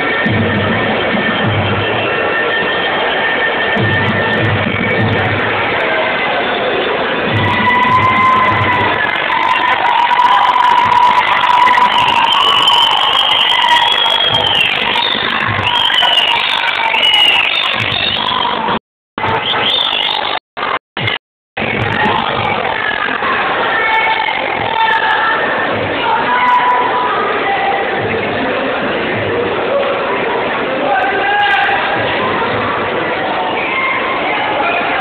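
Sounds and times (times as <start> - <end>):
drum beats: 0.0 - 23.6, 24.2 - 27.0, 27.8 - 30.6, 31.7 - 33.7
crowd noise: 0.0 - 35.0.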